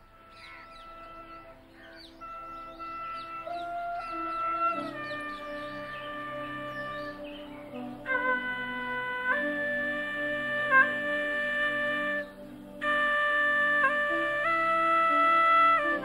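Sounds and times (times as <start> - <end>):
slow flute melody: 0.0 - 16.0
small birds chirping: 0.0 - 16.0.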